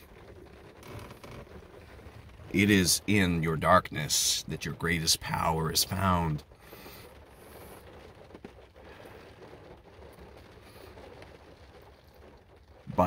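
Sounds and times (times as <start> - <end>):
car cabin background noise: 0.0 - 13.0.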